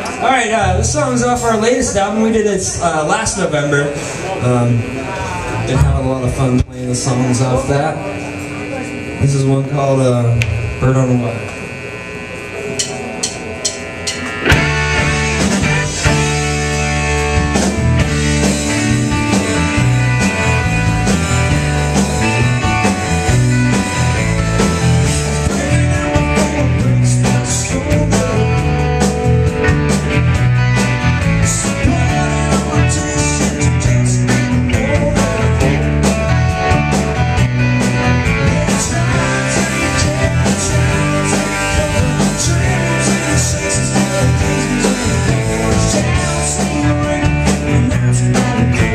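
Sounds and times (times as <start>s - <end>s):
rock band playing: 0.0s - 48.9s.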